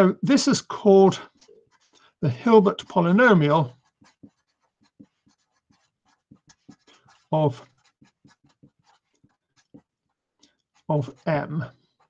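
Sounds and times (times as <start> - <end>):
felt-tip marker writing on paper: 1.2 - 12.0.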